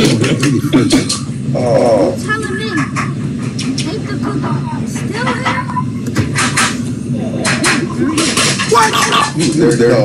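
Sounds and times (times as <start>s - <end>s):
indistinct voices: 0.0s - 6.0s.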